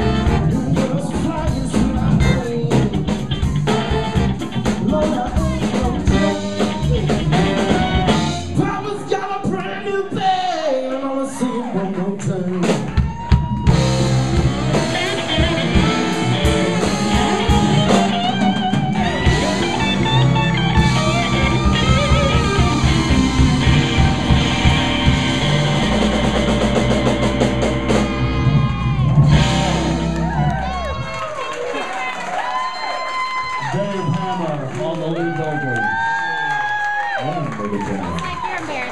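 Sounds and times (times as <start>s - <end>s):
funk band playing live: 0.0s - 10.2s, 12.0s - 32.4s.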